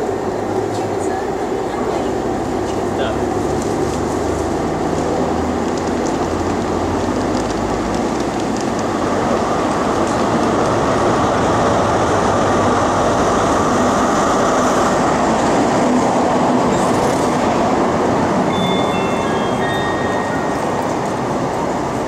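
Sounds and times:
diesel train engine and wheels: 0:00.0 - 0:22.0.

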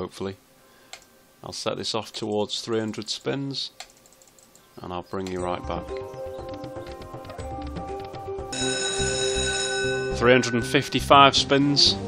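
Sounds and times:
game music: 0:05.3 - 0:12.0
bright sustained chime chord: 0:08.5 - 0:11.4.

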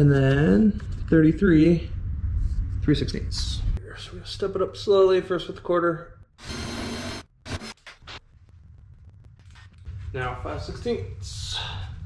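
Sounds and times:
cordless drill drilling metal: 0:06.4 - 0:07.8.

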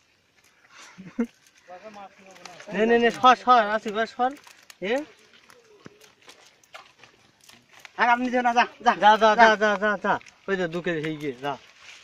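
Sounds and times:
fish and net tapping and rustling: 0:00.0 - 0:12.0.

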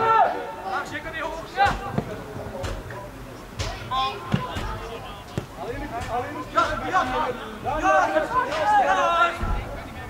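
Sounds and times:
players shouting: 0:00.0 - 0:02.5, 0:03.6 - 0:09.6
football kick thuds: 0:05.4 - 0:06.2.

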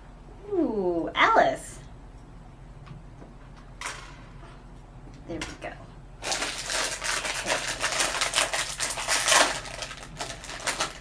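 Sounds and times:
foil bag crinkling and tearing: 0:06.2 - 0:11.0.

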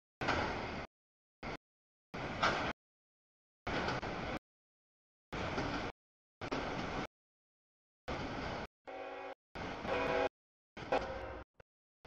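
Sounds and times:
freight train rumble: 0:00.2 - 0:01.6, 0:03.7 - 0:04.4, 0:05.4 - 0:07.1, 0:08.1 - 0:11.6
train horn chord: 0:08.9 - 0:10.3, 0:10.9 - 0:11.4.

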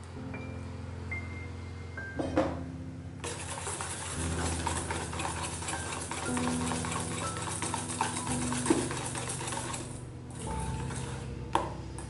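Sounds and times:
whisk scraping metal bowl: 0:03.2 - 0:11.3.

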